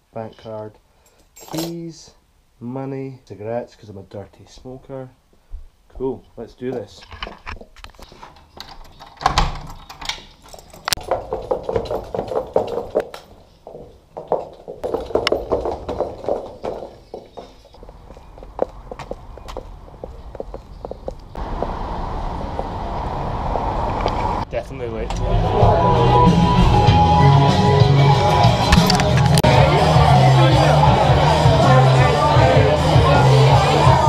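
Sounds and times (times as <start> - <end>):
door opening and closing: 7.1 - 13.3
key turning in lock: 7.2 - 11.1
footsteps: 10.3 - 24.4
steady background din: 24.6 - 34.0.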